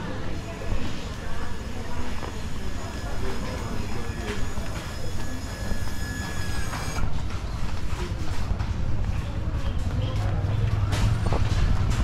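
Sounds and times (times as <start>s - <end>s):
street rumble: 7.0s - 12.0s.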